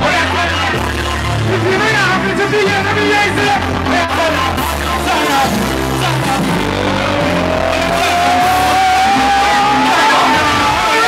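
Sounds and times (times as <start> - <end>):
loud live concert music: 0.0 - 11.0
tone gliding upward: 6.3 - 10.4.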